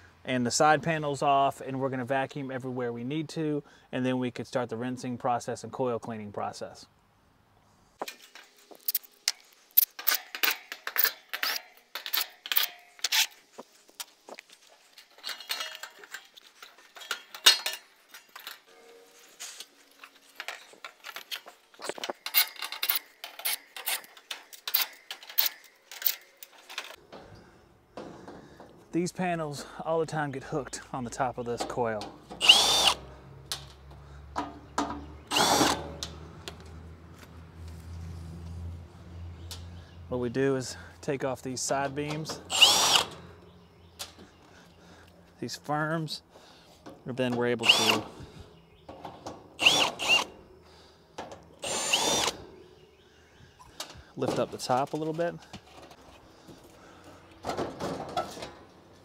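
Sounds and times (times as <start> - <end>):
metallic clinks and clatter: 14.8 - 18.8.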